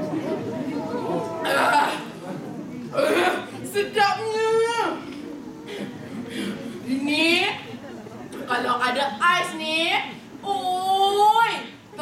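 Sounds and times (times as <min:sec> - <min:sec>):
murmur of overlapping voices: 0:00.0 - 0:12.0.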